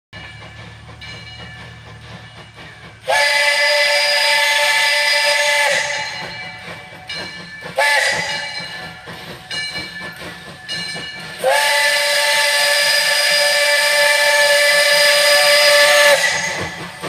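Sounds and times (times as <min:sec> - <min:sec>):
steam hiss: 0:00.2 - 0:17.0
steam locomotive whistle: 0:02.9 - 0:09.3, 0:10.4 - 0:17.0.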